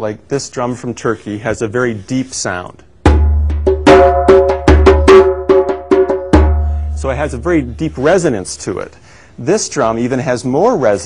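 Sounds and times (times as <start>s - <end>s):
goblet drum deep bass strokes: 3.1s - 8.2s
goblet drum sharp strokes: 3.1s - 8.2s.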